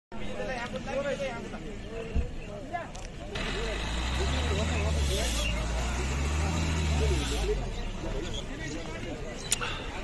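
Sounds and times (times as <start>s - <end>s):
people talking: 0.1s - 10.0s
engine running: 3.1s - 8.3s.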